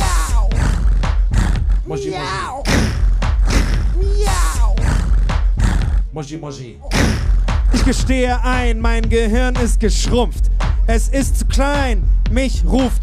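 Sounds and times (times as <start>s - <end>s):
programmed beat with heavy bass: 0.0s - 1.9s, 2.6s - 6.1s, 6.9s - 13.0s
looped wordless vocal calls: 0.0s - 6.2s.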